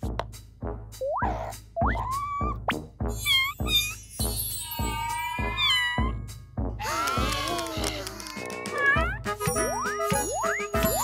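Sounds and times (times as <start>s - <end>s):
cartoon cat meowing: 3.2s - 6.2s, 6.8s - 9.2s
children's song with bouncy beat: 8.7s - 11.0s.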